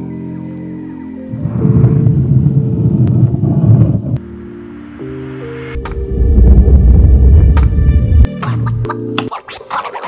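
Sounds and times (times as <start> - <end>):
rough low rumble: 1.3 - 8.3.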